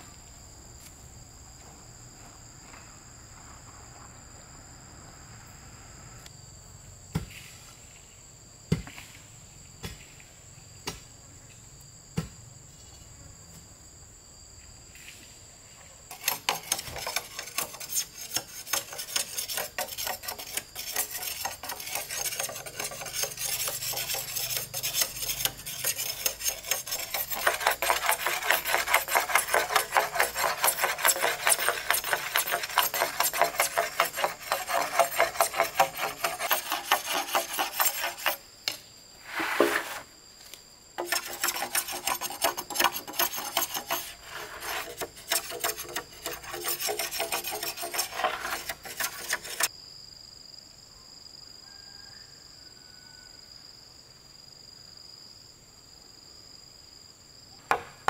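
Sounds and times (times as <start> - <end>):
insects chirring: 0.0 - 58.0
blade scraping bamboo: 16.1 - 38.4, 39.2 - 40.1, 41.0 - 49.7.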